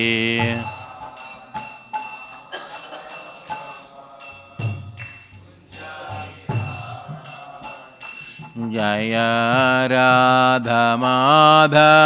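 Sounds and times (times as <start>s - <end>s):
hand cymbals struck: 0.0s - 12.0s
people chanting: 0.0s - 12.0s.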